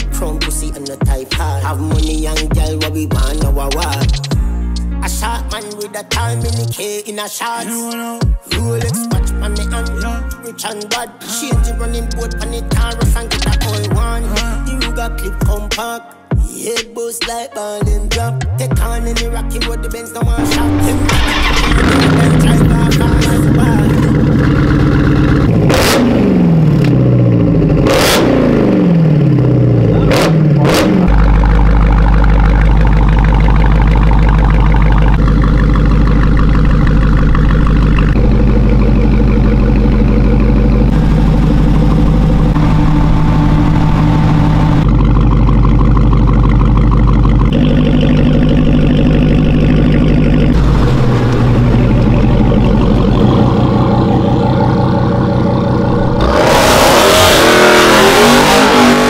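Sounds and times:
car engine idling: 20.3 - 59.0
car engine revving: 20.4 - 59.0.

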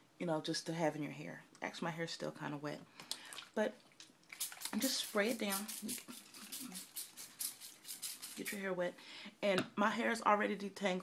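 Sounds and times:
spray bottle squirting: 4.3 - 8.6.

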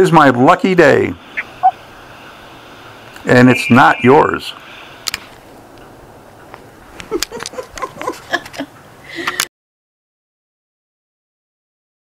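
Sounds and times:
telephone line hiss: 1.2 - 5.0
faint blips: 1.3 - 2.4, 3.0 - 4.8
person speaking: 3.2 - 4.6.

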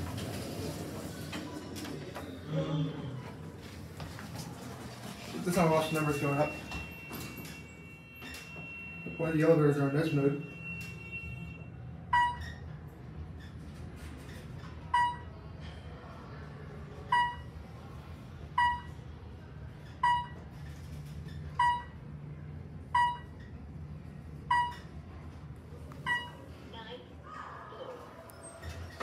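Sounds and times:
elevator car hum: 0.0 - 29.0
elevator floor beeps: 0.9 - 3.3, 5.2 - 12.8, 14.8 - 15.5, 17.0 - 17.8, 18.4 - 25.2, 26.0 - 27.0.

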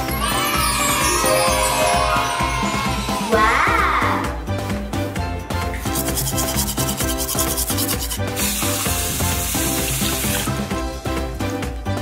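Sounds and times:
background music: 0.0 - 12.0
toothbrush scrubbing teeth: 5.8 - 10.6.

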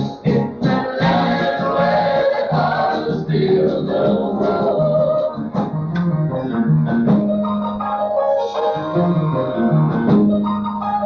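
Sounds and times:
voices singing in harmony: 0.0 - 5.4
instrumental accompaniment with bass: 0.0 - 11.0.

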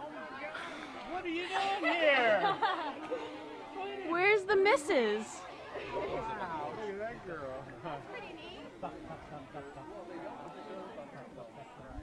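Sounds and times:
indistinct chatter of voices: 0.0 - 12.0.

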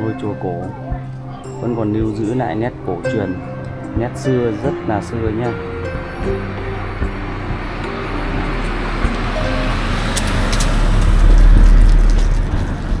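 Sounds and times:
faint background music: 0.0 - 11.7
road vehicle passing: 0.0 - 13.0.

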